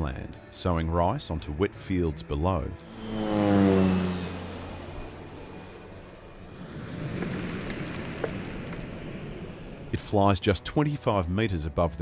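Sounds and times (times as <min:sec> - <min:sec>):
low-flying plane engine drone: 0:01.6 - 0:12.0.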